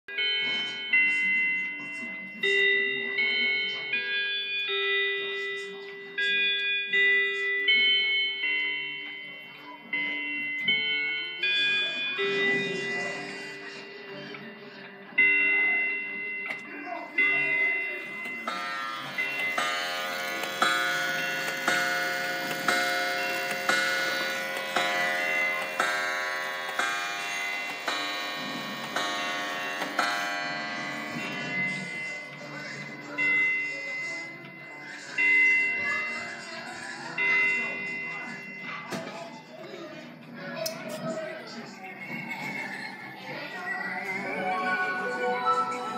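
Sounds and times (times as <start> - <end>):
clock chime notes: 0.1 - 39.5
clocks striking the hour: 15.2 - 36.4.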